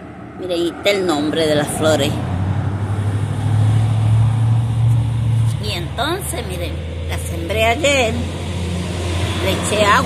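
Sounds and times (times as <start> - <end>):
traffic rushing: 0.0 - 10.0
vehicle engine passing: 0.0 - 10.0.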